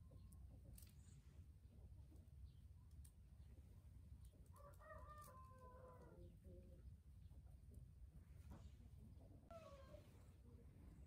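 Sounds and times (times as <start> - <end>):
distant rooster crowing: 4.5 - 6.2.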